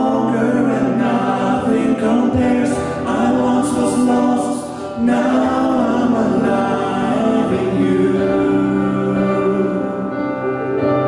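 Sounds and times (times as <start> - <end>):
men singing in harmony: 0.0 - 10.6
keyboard accompaniment: 0.0 - 11.0.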